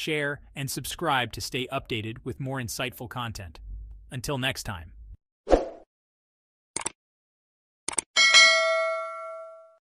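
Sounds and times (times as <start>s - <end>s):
bell-like chime: 8.2s - 9.8s.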